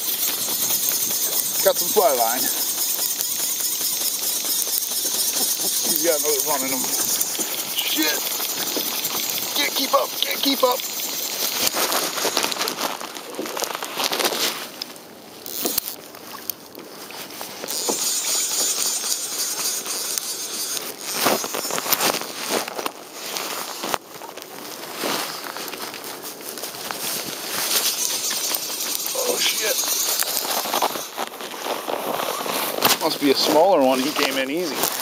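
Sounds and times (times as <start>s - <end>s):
fishing line hissing: 0.0s - 14.5s, 15.4s - 16.4s, 17.0s - 24.3s, 25.2s - 35.0s
fly reel clicking: 0.0s - 14.5s, 15.4s - 16.6s, 17.2s - 24.4s, 25.2s - 35.0s.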